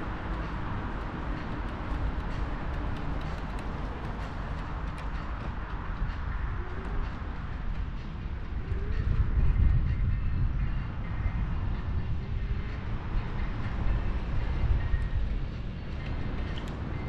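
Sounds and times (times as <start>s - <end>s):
city traffic: 0.0s - 17.0s
wind and road noise: 0.0s - 17.0s.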